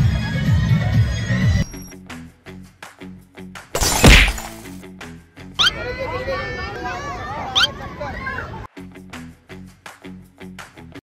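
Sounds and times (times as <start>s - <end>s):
loud impact whack: 3.8s - 4.8s
crowd of voices: 5.6s - 8.7s.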